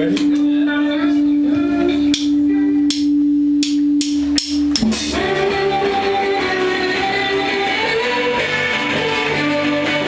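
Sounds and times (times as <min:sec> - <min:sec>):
electric guitar drone: 0:00.6 - 0:10.0.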